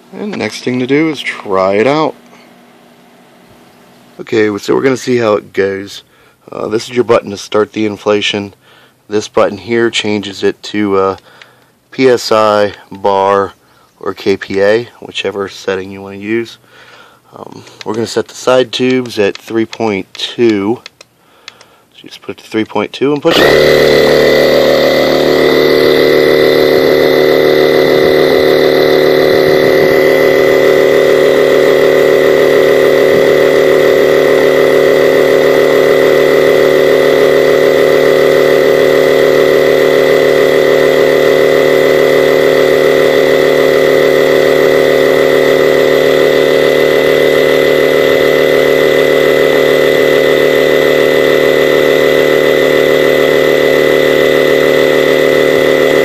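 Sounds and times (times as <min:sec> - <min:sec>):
high whine: 0:00.0 - 0:08.6, 0:23.3 - 0:56.0
electric air pump running: 0:23.3 - 0:56.0.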